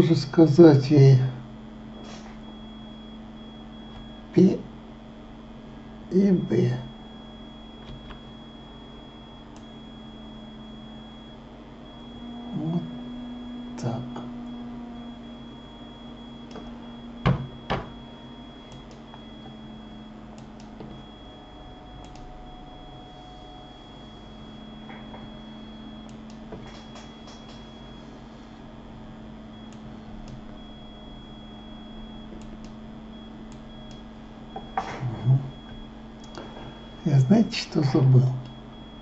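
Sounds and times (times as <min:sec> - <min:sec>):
faint high whine: 0:00.0 - 0:39.0
low electrical hum: 0:00.0 - 0:39.0
sharp clicks: 0:18.7 - 0:19.6, 0:22.0 - 0:22.3, 0:32.3 - 0:32.8.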